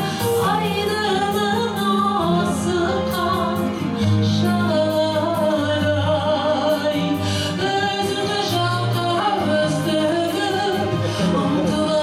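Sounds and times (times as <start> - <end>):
instrumental accompaniment with bass: 0.0 - 12.0
woman singing into microphone: 0.0 - 12.0.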